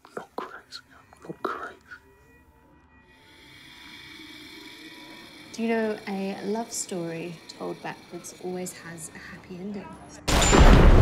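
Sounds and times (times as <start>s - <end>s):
breathy whispered voice: 0.0s - 2.2s, 3.2s - 10.2s.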